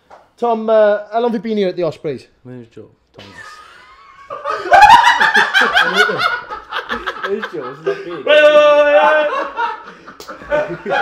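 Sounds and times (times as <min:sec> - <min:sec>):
men laughing: 0:03.2 - 0:11.0.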